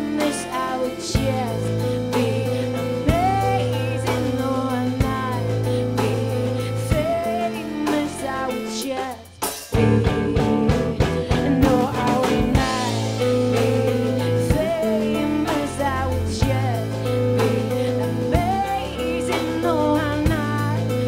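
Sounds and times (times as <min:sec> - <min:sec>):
drum kit: 0:00.0 - 0:21.0
electric guitar: 0:00.0 - 0:21.0
woman singing: 0:00.0 - 0:21.0.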